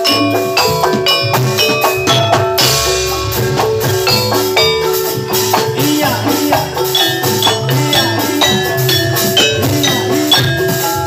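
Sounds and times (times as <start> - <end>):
metallophones ringing: 0.0 - 11.0
pitch-bending drums: 0.0 - 11.0.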